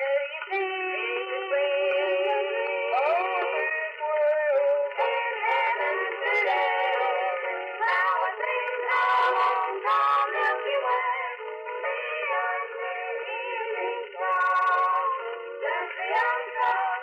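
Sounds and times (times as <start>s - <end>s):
boys singing in close harmony: 5.0s - 17.0s.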